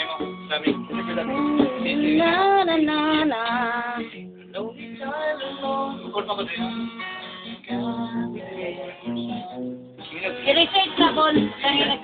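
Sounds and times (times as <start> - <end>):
acoustic guitar strumming: 0.0 - 12.0
person singing: 1.0 - 6.1, 7.7 - 9.6.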